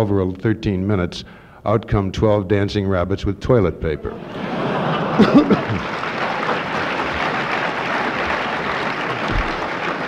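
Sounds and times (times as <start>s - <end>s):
audience applauding: 4.2s - 10.0s.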